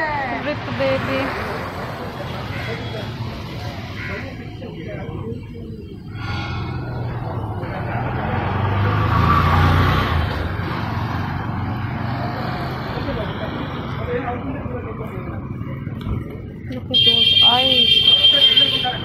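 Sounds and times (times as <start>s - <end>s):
motor vehicle passing: 6.0s - 16.5s.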